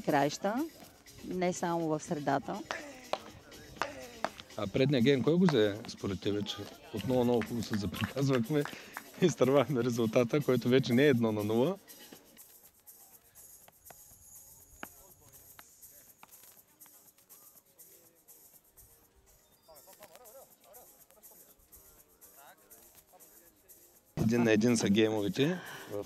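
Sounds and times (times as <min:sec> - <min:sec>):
faint distant voices: 0:11.7 - 0:24.9.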